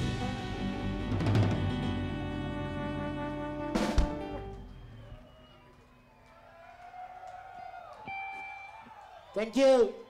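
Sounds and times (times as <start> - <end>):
reggae band playing soft notes: 0.0 - 5.1.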